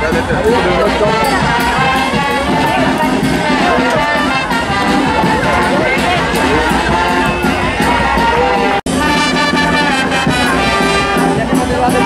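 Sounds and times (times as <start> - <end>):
brass band playing: 0.0 - 12.0
crowd voices: 0.0 - 12.0.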